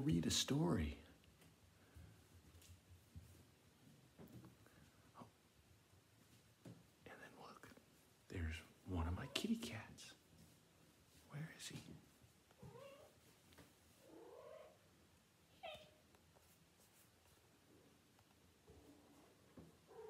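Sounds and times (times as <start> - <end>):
person whispering: 7.0 - 10.2, 11.1 - 12.0
cat meowing softly: 9.1 - 9.6, 12.6 - 13.3, 14.0 - 14.8, 15.5 - 16.1, 19.8 - 20.0.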